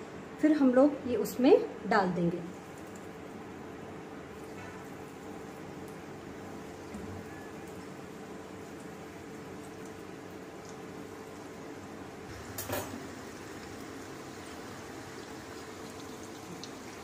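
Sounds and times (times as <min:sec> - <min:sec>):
food deep-frying in hot oil: 0:02.4 - 0:17.0.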